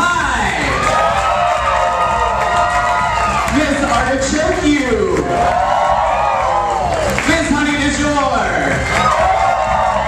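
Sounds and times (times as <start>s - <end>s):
loud disco music: 0.0s - 10.0s
audience cheering: 0.6s - 4.2s, 4.8s - 7.7s, 8.7s - 10.0s.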